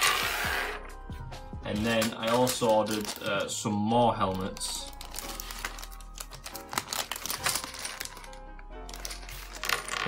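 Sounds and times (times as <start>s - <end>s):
background music: 0.0s - 10.0s
plastic bag crinkling: 1.8s - 10.0s.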